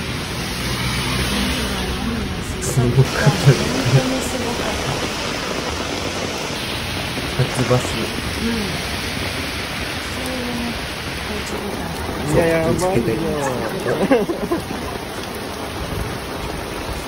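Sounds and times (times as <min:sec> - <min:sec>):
rain falling on pavement: 0:00.0 - 0:17.0.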